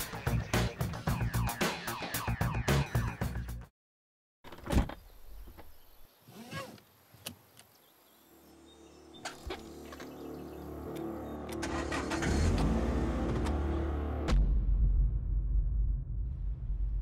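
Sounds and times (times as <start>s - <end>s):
car engine humming: 8.5s - 14.3s.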